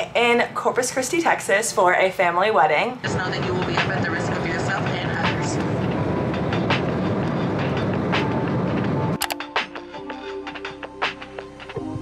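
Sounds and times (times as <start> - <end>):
woman's voice: 0.0 - 5.9
jet airliner cabin roar: 2.7 - 10.0.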